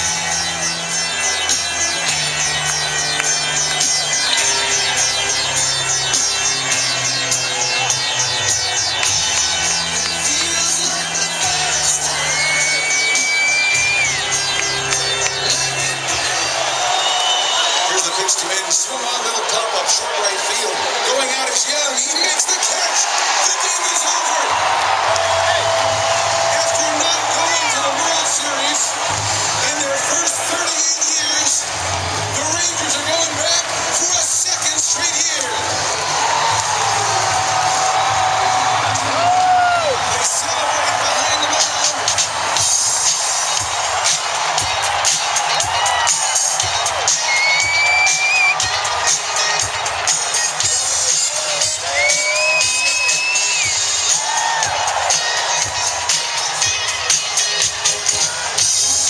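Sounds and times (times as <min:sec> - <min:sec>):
loud music: 0:00.0 - 0:59.0
stadium crowd cheering: 0:00.0 - 0:59.0.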